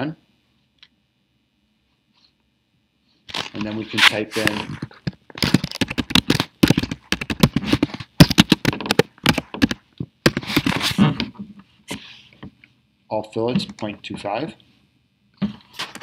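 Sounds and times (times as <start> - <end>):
computer keyboard typing: 5.5 - 10.4.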